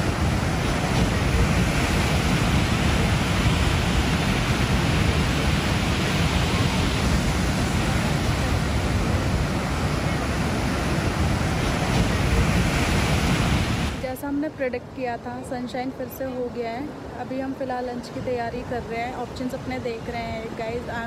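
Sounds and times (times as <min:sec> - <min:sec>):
surf breaking on beach: 0:00.0 - 0:14.2
wind buffeting microphone: 0:00.0 - 0:15.2.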